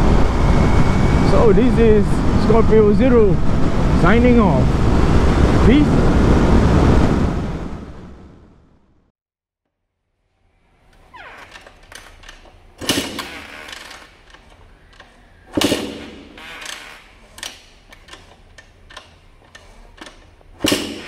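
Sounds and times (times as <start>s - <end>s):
dirt bike engine turning over: 10.8s - 21.0s
kick-start clunk: 10.9s - 21.0s.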